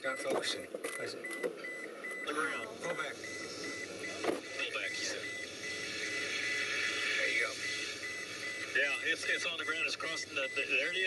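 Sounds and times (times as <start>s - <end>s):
car warning chime beeping: 0.0s - 6.3s, 7.2s - 11.0s
faint broadcast voices: 0.0s - 11.0s.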